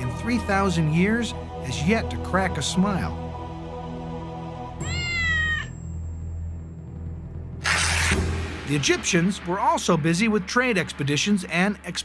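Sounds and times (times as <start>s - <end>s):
low music drone: 0.0s - 4.9s, 6.0s - 12.0s
cat meow: 4.8s - 5.8s.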